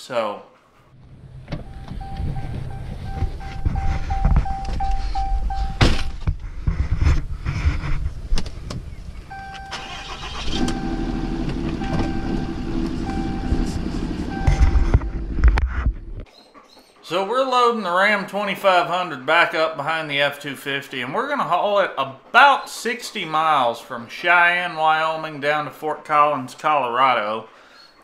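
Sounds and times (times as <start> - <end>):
low rumble: 0.9 - 9.6, 10.6 - 16.2
knocks and thumps: 1.0 - 8.9, 14.4 - 16.3
dashboard warning chime beeping: 1.6 - 6.2, 9.3 - 15.3.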